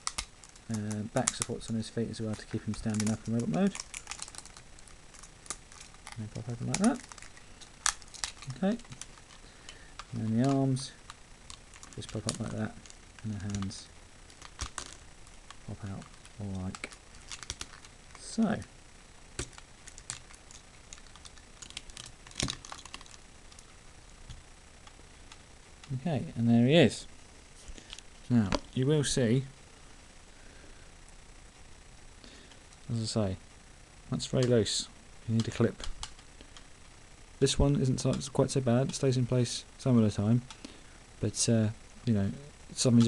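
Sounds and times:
plastic toy parts clicking: 0.0 - 1.7, 2.3 - 9.4, 14.3 - 15.0, 19.4 - 23.6.

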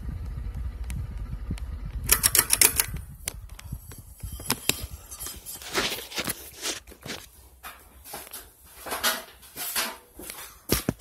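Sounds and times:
ceiling fan humming: 0.0 - 11.0
sharp rattling clicks: 1.9 - 5.0.

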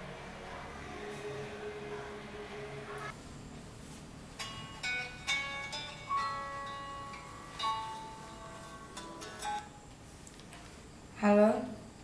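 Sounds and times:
slow plucked melody: 4.4 - 9.8.

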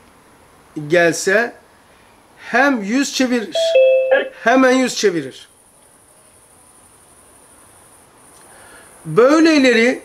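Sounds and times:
crickets chirping: 5.5 - 9.2.

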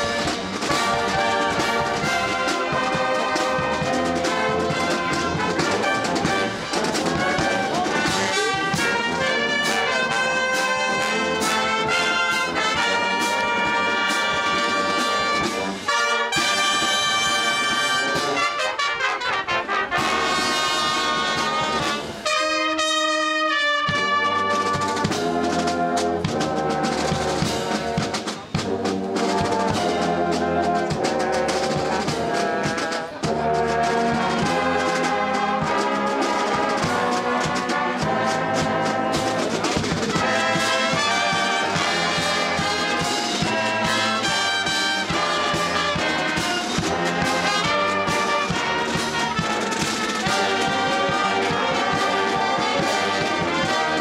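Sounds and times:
drums: 0.0 - 54.0
marching brass band: 0.0 - 54.0.

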